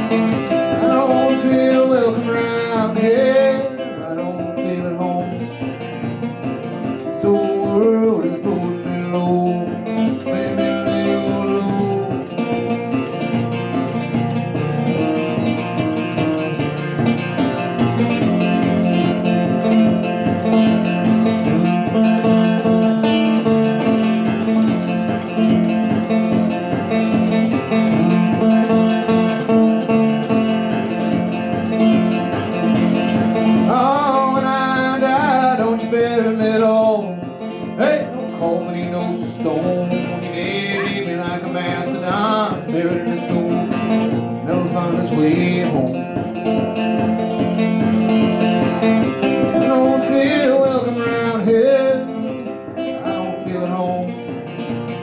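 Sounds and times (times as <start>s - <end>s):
person singing: 0.0s - 5.6s, 6.6s - 12.8s, 33.4s - 46.2s, 49.0s - 54.3s
fingerpicked resonator guitar: 0.0s - 55.0s.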